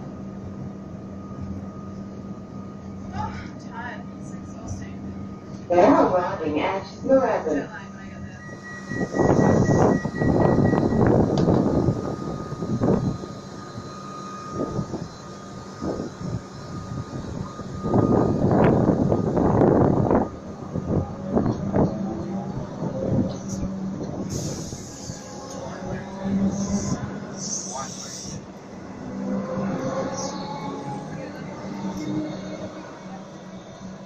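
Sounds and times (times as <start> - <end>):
electric train pulling away: 8.0 - 34.0.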